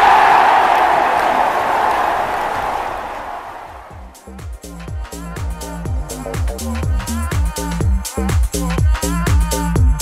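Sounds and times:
large crowd cheering: 0.0 - 4.3.

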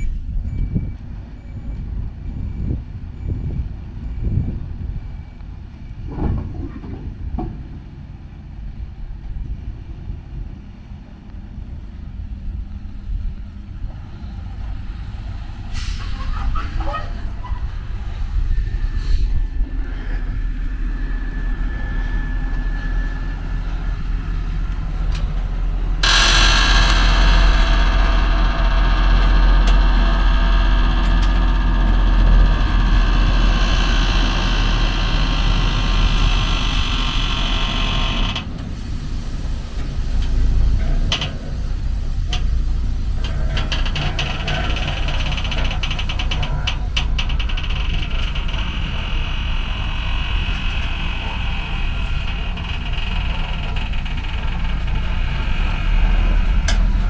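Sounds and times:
truck engine running: 11.7 - 57.0
loud rushing hiss: 14.1 - 16.6, 20.5 - 57.0
clicks: 26.0 - 38.5.

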